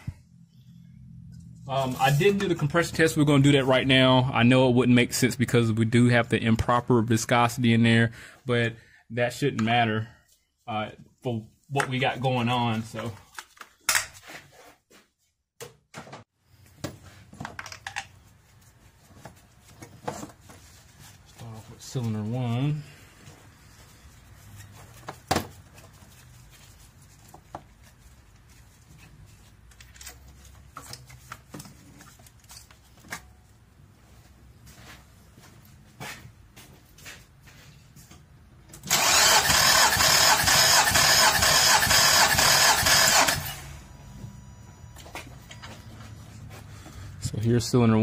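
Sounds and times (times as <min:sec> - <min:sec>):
car engine cranking by starter: 0:38.8 - 0:44.0.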